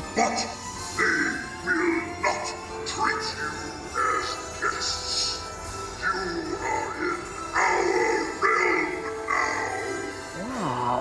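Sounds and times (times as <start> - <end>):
spooky background music: 0.0 - 11.0
deep processed monster voice: 8.9 - 11.0
low voice sliding in pitch: 10.4 - 11.0.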